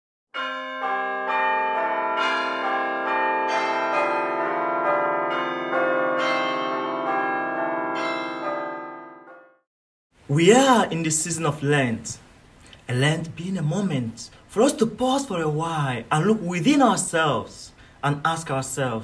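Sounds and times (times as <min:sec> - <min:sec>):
bells ringing: 0:00.4 - 0:09.6.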